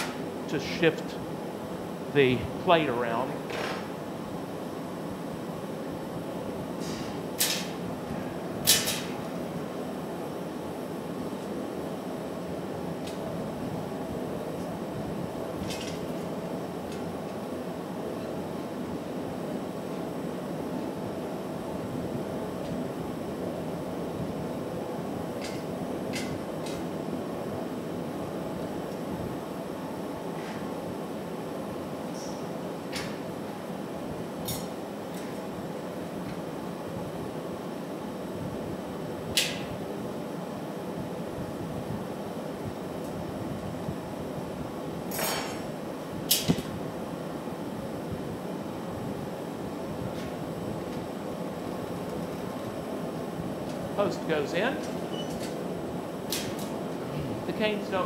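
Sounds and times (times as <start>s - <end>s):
furnace burner roaring: 0.0s - 58.0s.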